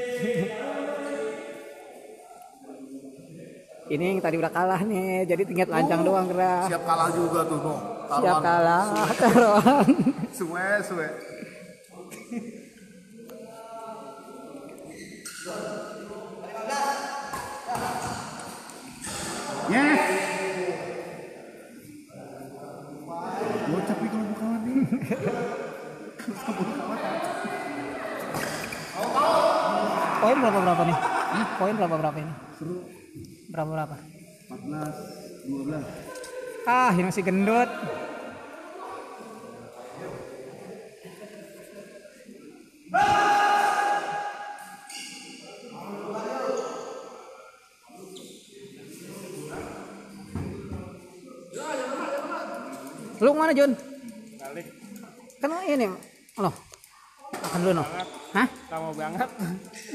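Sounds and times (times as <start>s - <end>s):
voices echoing in a hall: 0.0s - 59.9s
men talking: 5.3s - 42.5s, 48.0s - 56.6s, 57.4s - 59.9s.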